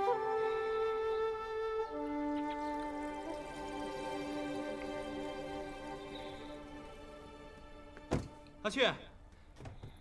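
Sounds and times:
soft instrumental drama music: 0.0s - 9.4s
thud: 8.1s - 8.4s.

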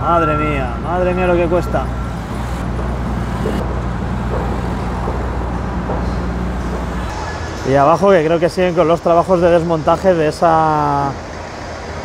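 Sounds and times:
road traffic engines rumbling: 0.0s - 12.0s.

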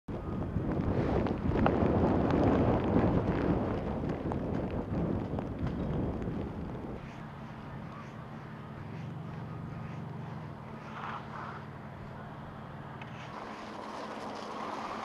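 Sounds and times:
gusty wind buffeting microphone: 0.1s - 15.0s.

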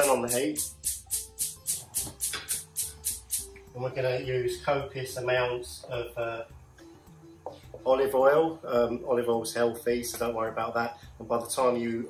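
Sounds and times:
gas igniter clicking: 0.0s - 3.6s.

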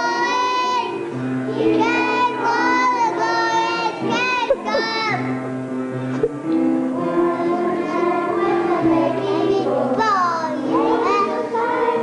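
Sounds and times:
children singing a carol: 0.0s - 5.3s, 6.9s - 12.0s.

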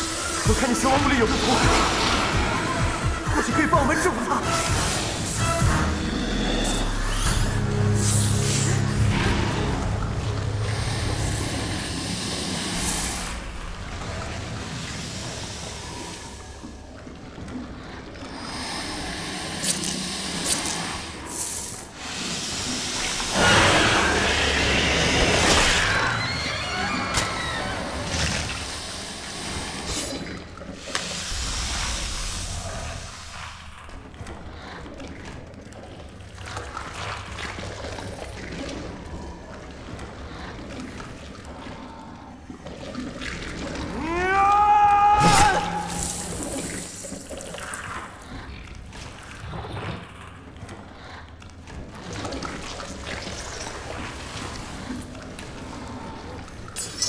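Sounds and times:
background film music: 0.0s - 57.0s.

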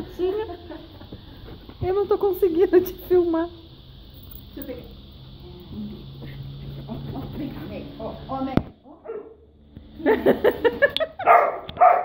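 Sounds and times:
dog yipping and barking: 9.0s - 9.4s, 11.2s - 12.0s.

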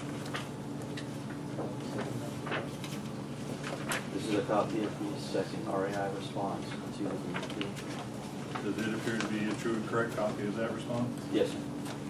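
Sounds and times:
paper handling: 0.0s - 12.0s
low hummed voice: 3.9s - 11.8s.

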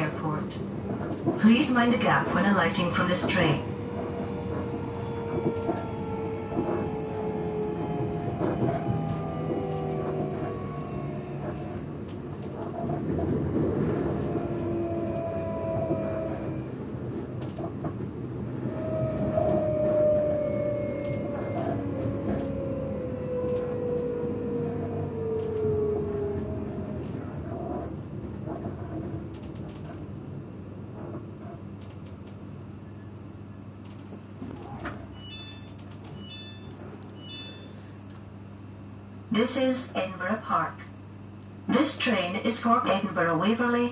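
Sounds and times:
train traction motors whining: 0.0s - 29.8s
wheel and rail rumble: 0.0s - 38.4s.

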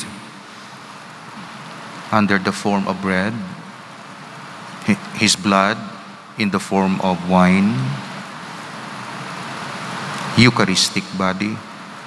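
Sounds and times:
room noise hiss: 0.0s - 12.0s.

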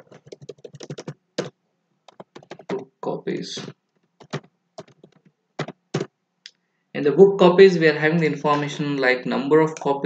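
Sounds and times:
computer keyboard typing: 0.0s - 1.5s, 2.1s - 2.8s, 3.6s - 6.1s.

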